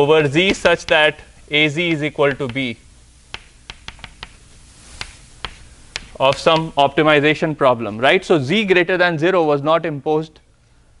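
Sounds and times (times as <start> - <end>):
faint room hiss: 0.0 - 11.0
chalk clicking on blackboard: 2.3 - 2.7, 3.3 - 6.7.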